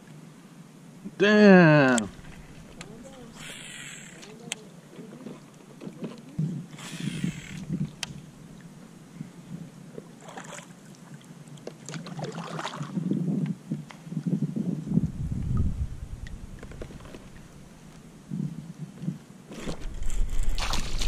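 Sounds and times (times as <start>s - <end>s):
kayak paddle splashing in water: 2.1s - 3.7s, 10.2s - 10.8s, 11.6s - 12.9s, 19.5s - 21.0s.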